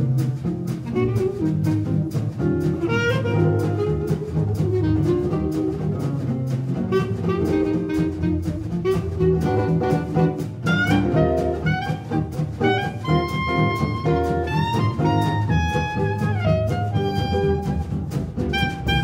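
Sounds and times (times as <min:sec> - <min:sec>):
clarinet: 0:00.0 - 0:19.0
double bass: 0:00.0 - 0:19.0
drums: 0:00.0 - 0:19.0.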